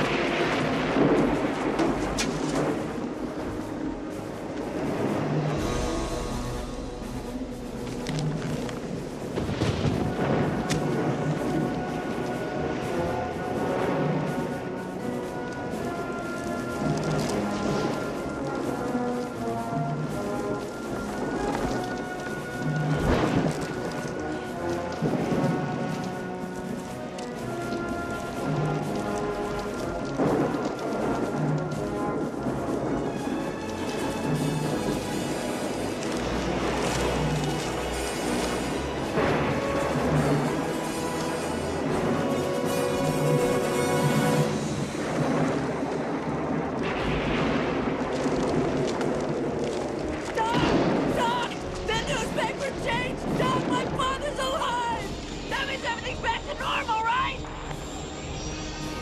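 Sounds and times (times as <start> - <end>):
orchestral film music: 0.0 - 59.0
rain: 0.0 - 59.0
thunder rumbling: 0.0 - 59.0
wind: 0.0 - 59.0.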